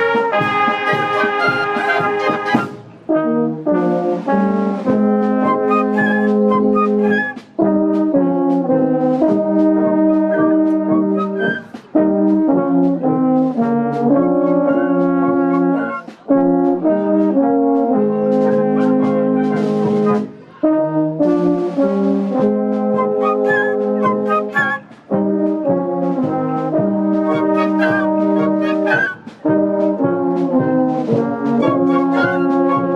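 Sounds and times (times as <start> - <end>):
flutes: 0.0 - 2.9, 4.9 - 32.9
trumpets: 0.0 - 32.9
tubas and baritone horns: 0.0 - 32.9.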